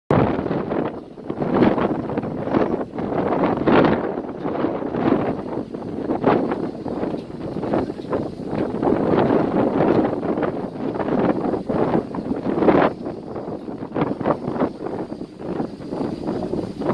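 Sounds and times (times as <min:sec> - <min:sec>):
gusty wind buffeting microphone: 0:00.1 - 0:16.9.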